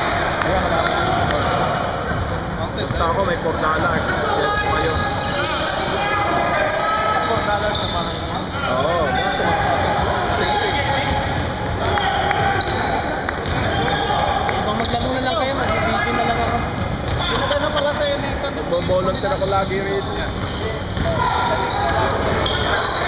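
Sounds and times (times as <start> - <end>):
players' voices and calls: 0.0 - 23.0.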